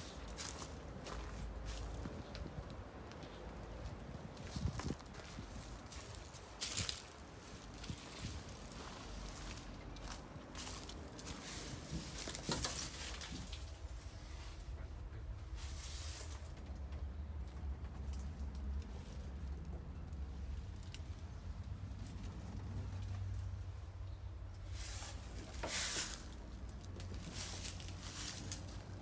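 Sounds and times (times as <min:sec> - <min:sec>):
footsteps crunching dry leaves: 0:00.0 - 0:02.3, 0:04.3 - 0:13.7, 0:24.7 - 0:29.0.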